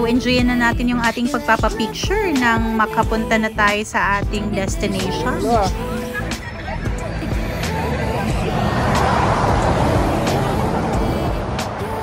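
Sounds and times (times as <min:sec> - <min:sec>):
background music: 0:00.0 - 0:12.0
vehicle passing on highway: 0:05.0 - 0:12.0.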